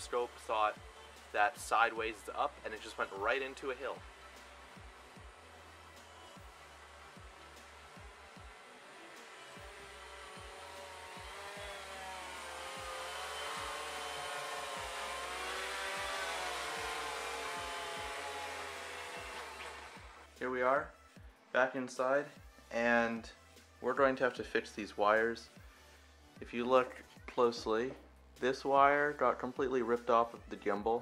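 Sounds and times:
drone propellers whining: 3.0s - 20.3s.

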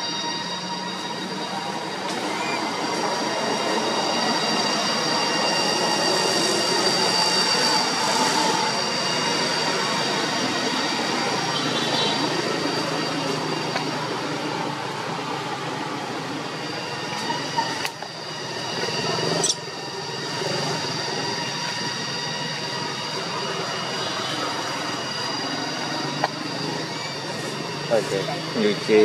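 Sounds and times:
high ringing tones: 0.0s - 29.0s
steady outdoor hiss: 0.0s - 29.0s.

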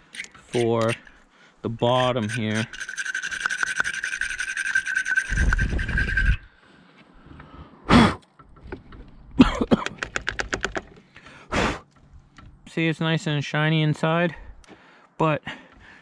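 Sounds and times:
wire brush scraping squeal: 0.0s - 6.5s.

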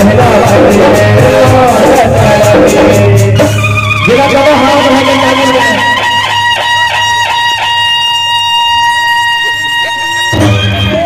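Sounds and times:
deep bass part: 0.0s - 6.0s.

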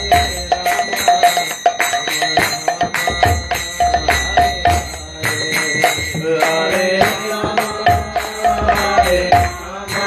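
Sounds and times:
bell-like metal ringing: 0.0s - 10.0s.

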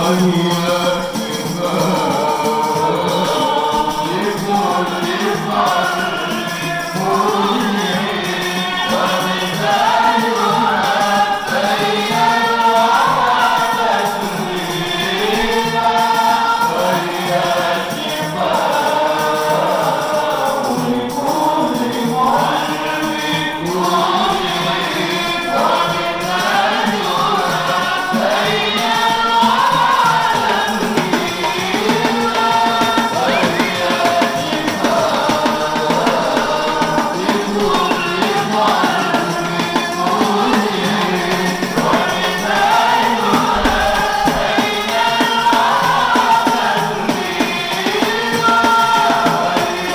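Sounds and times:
frame drums with jingles: 0.0s - 49.9s
men chanting together: 0.0s - 49.9s
men singing with chorus: 0.0s - 49.9s.

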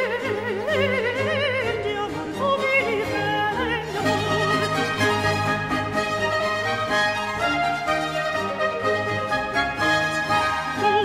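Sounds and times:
countertenor singing opera aria: 0.0s - 6.0s, 10.2s - 11.0s
string orchestra: 0.0s - 11.0s.

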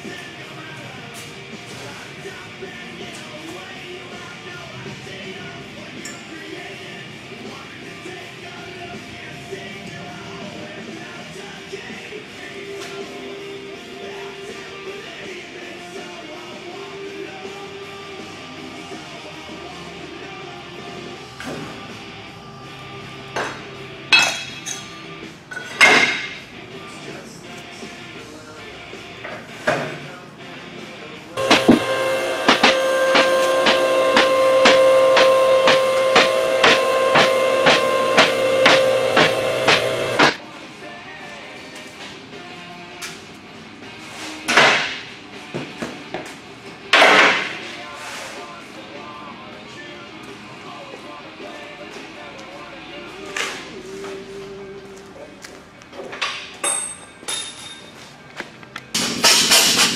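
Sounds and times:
hydraulic pump running: 31.4s - 40.4s.

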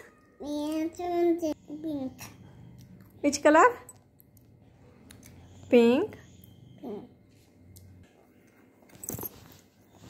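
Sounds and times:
small child singing: 0.4s - 2.3s.

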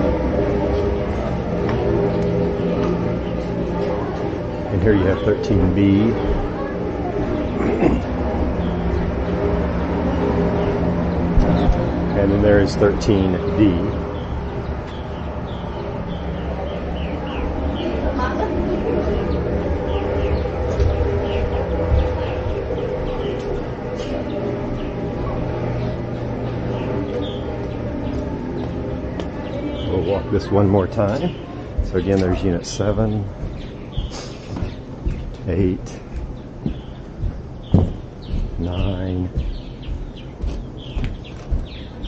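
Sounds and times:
birds chirping: 0.0s - 42.0s
steady low hum: 0.0s - 42.0s
footsteps on wooden deck: 19.7s - 29.9s, 30.9s - 42.0s.

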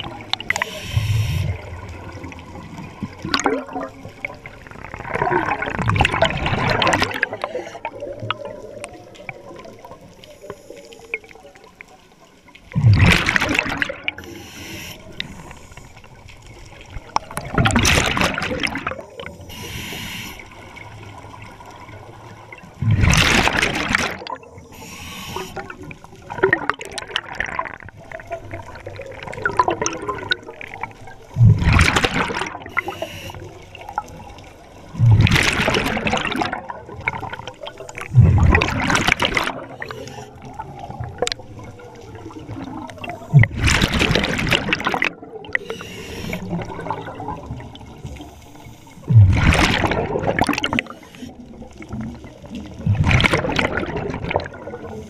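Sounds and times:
exhaled bubbles bursting: 0.0s - 10.0s, 12.7s - 14.3s, 17.0s - 19.4s, 22.5s - 24.6s, 25.4s - 33.0s, 33.7s - 48.2s, 49.0s - 55.0s
underwater gurgling: 0.0s - 55.0s.

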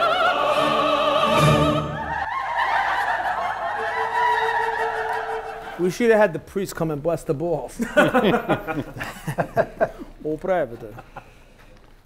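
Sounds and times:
long wavering shouts: 0.0s - 5.8s
men cheering and laughing: 0.0s - 6.3s, 7.8s - 11.3s.

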